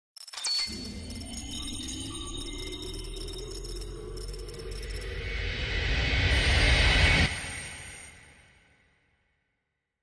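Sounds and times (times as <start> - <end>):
fast high-pitched electronic beeping: 0.2 - 5.4
steady low drone: 0.7 - 7.4.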